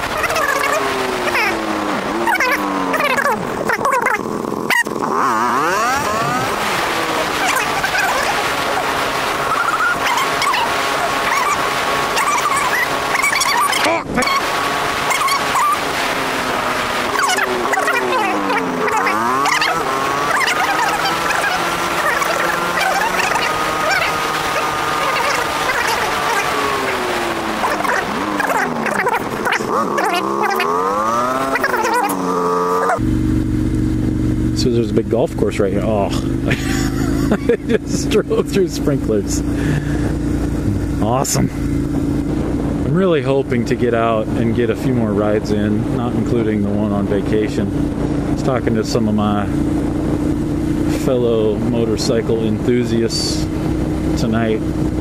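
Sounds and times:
wind rush on microphone: 0.0 - 32.0, 39.0 - 55.0
motorcycle engine: 0.0 - 55.0.

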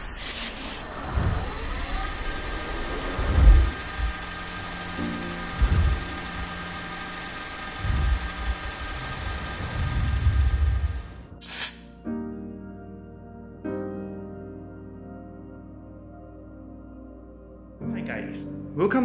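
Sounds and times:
steady whine: 0.0 - 11.4.

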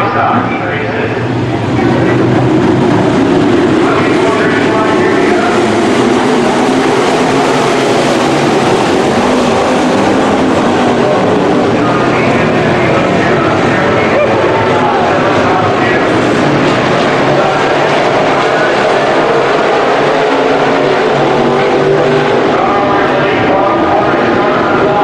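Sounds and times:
race car engines droning: 0.0 - 25.0.

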